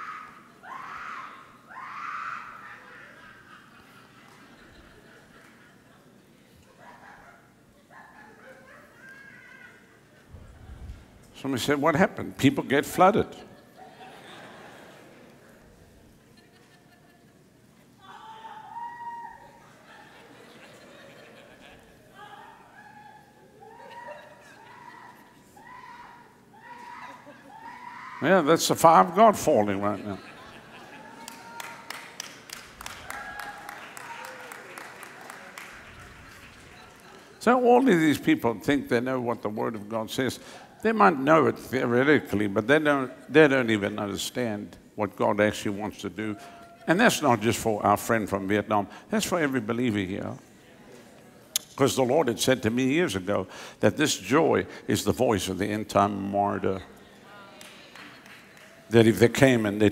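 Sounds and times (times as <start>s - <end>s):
scattered hand claps: 31.2s - 37.3s, 57.6s - 58.9s.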